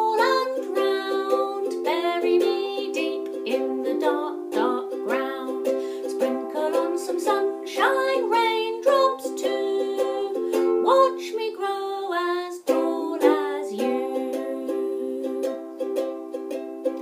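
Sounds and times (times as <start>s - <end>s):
woman singing: 0.0s - 15.8s
ukulele strumming: 0.0s - 17.0s.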